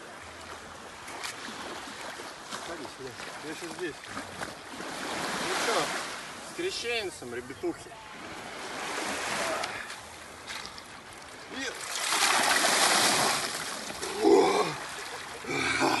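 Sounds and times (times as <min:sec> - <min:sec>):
water poured and splashing: 0:11.8 - 0:14.2
person crying out: 0:14.0 - 0:16.0.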